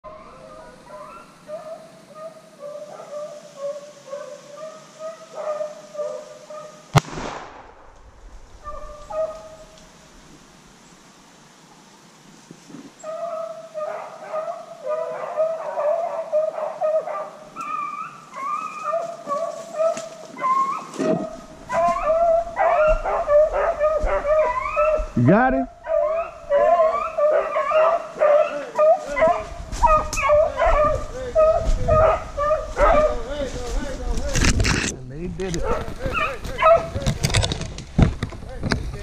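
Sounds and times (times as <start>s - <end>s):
hounds baying: 0.0s - 6.8s, 8.6s - 9.8s, 13.0s - 33.8s, 35.5s - 37.6s
gunshot: 6.9s - 8.0s.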